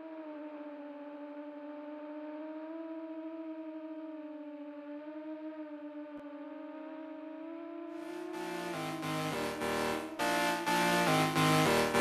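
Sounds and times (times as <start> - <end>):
low synthesizer tone: 8.0 - 12.0.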